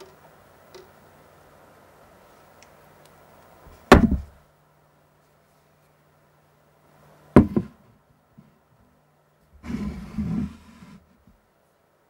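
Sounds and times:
glass sliding on table: 9.6 - 11.2.

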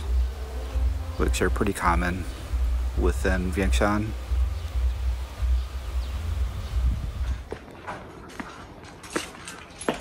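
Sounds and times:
wind buffeting microphone: 6.0 - 7.5.

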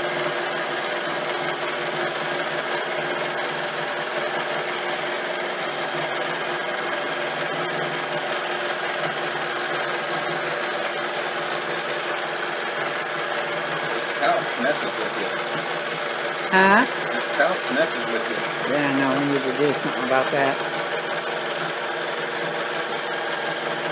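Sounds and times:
sewing machine running: 0.0 - 23.9.

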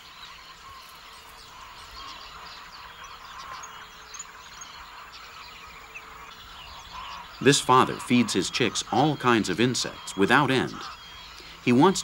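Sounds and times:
small bird chirps: 0.0 - 12.0.

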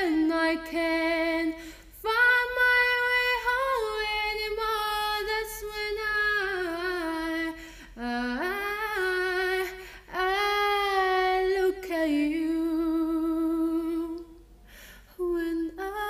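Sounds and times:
woman singing: 0.0 - 14.4, 15.1 - 16.0.

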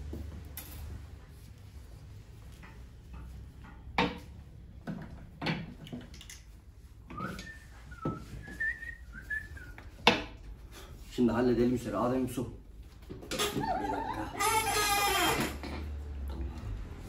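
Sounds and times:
person whistling: 7.1 - 9.8.

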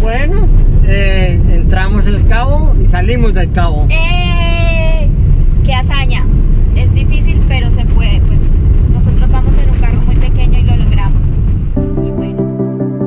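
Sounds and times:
car engine and tyre rumble: 0.0 - 12.3
music: 11.8 - 13.0.

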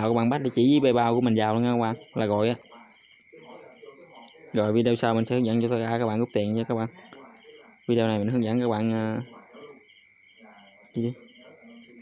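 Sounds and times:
man's voice: 0.0 - 9.8
faint insect chirping: 0.0 - 12.0.

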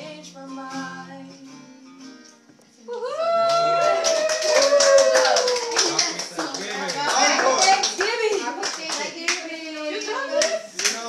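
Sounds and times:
acoustic guitar: 0.0 - 4.1
people calling out and cheering: 2.9 - 10.9
group clapping: 3.3 - 11.0.

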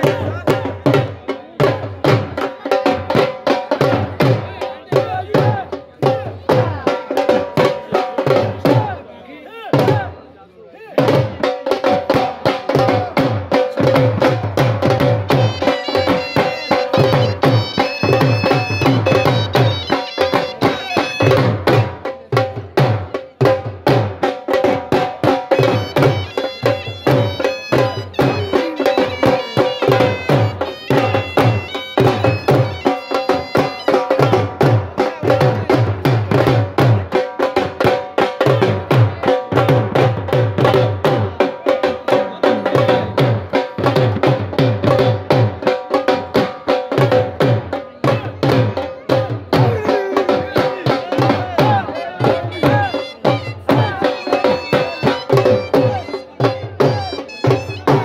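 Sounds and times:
drums beaten with sticks: 0.0 - 10.2, 10.9 - 58.0
high melody instrument: 15.3 - 21.6, 25.5 - 34.6, 52.4 - 58.0.

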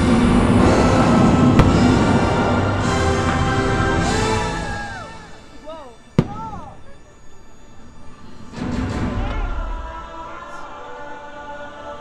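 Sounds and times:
firework bang: 0.0 - 3.5, 6.2 - 6.8
loud soundtrack music: 0.0 - 5.6, 8.5 - 12.0.

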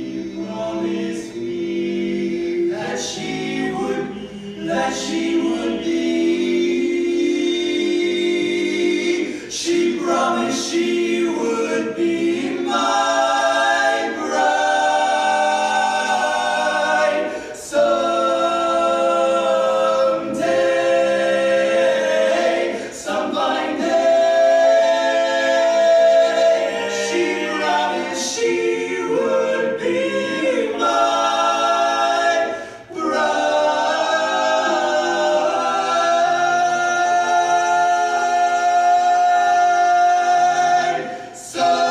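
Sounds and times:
quartet singing a cappella: 0.0 - 41.9.

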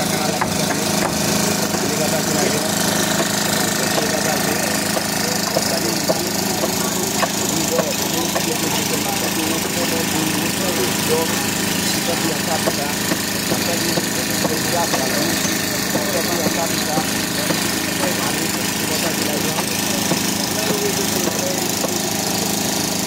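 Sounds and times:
engine running: 0.0 - 23.0
workers' voices: 0.0 - 23.0
sharp knocks: 0.3 - 2.0, 3.0 - 8.8, 12.6 - 22.1.

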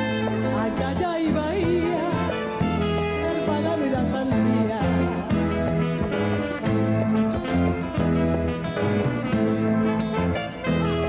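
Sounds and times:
bass notes: 0.0 - 11.0
guitar: 0.0 - 11.0.

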